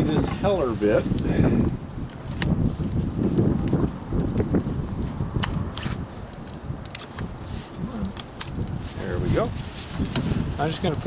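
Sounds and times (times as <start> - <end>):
rustling: 4.6 - 11.0
mumbled voice: 7.8 - 8.2.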